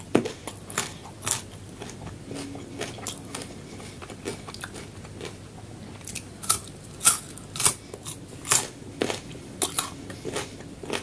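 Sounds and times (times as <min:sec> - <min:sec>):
crunchy chewing: 0:00.0 - 0:11.0.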